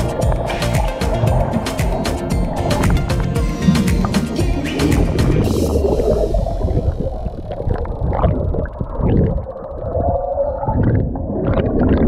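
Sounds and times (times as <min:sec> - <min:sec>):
muffled underwater churning: 0:00.0 - 0:12.0.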